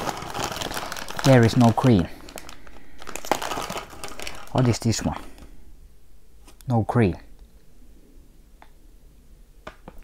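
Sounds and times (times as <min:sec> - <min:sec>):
plastic bag crinkling: 0:00.0 - 0:05.4.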